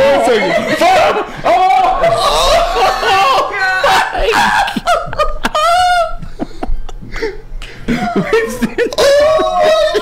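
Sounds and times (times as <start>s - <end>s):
people laughing and shrieking: 0.0s - 7.0s, 7.9s - 10.0s.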